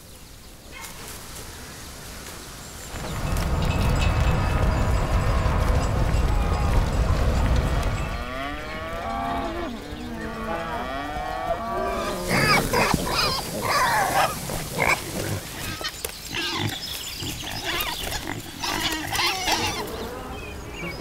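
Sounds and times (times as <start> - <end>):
cows mooing: 4.0 - 15.6
pigs grunting and squealing: 8.3 - 20.5.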